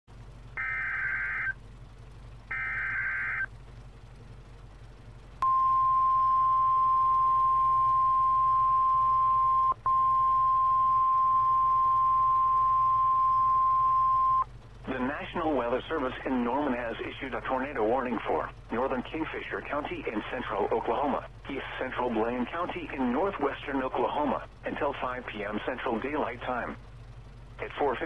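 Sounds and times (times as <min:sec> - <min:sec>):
buzzy digital data bursts: 0:00.6 - 0:01.5, 0:02.5 - 0:03.5
steady high alarm tone: 0:00.6 - 0:01.6, 0:02.5 - 0:03.5, 0:05.4 - 0:14.4.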